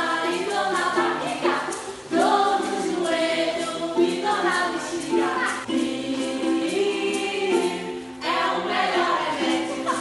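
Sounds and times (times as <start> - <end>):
choir singing: 0.0 - 10.0.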